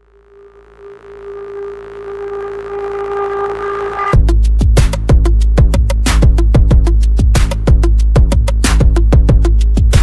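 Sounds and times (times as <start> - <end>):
steady synthesizer tone: 0.0 - 4.3.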